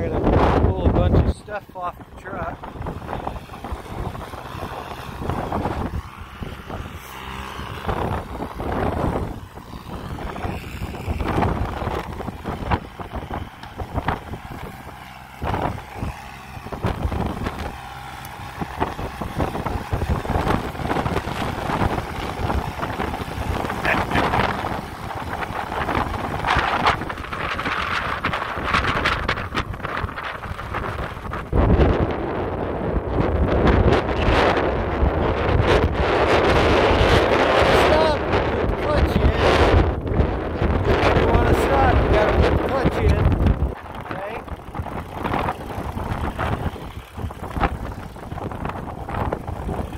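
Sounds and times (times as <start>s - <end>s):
tractor diesel engine running: 0.0s - 49.9s
wind buffeting microphone: 0.0s - 49.9s.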